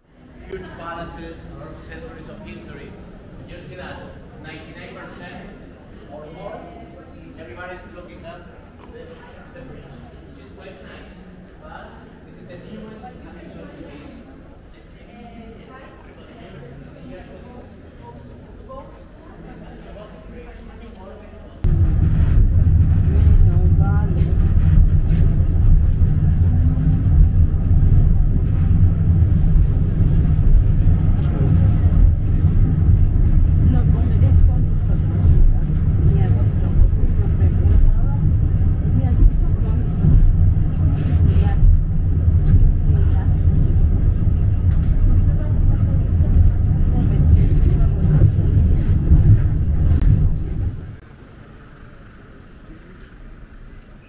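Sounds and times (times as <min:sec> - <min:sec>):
funicular car rumbling on track: 0:21.6 - 0:54.0.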